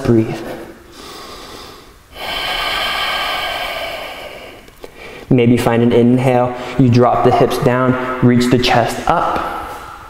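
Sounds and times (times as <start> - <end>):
man breathing steadily: 0.6 - 5.3.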